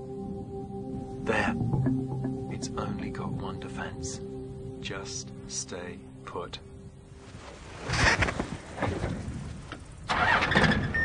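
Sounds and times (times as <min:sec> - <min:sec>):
vehicle engine starting and running: 0:10.1 - 0:11.0.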